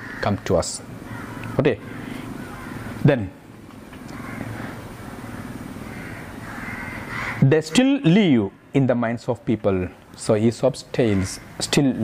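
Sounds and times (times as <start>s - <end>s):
faint bird calls: 0.0s - 3.0s, 3.9s - 9.0s
outdoor background noise: 0.0s - 12.0s.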